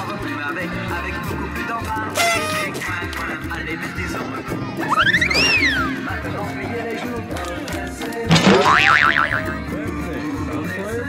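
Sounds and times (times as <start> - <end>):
cartoon boing sound effect: 8.3 - 9.6
dance music: 8.3 - 9.7.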